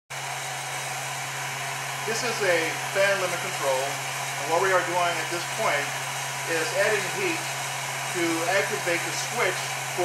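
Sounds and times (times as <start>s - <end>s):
hot air gun blowing: 0.1s - 10.0s.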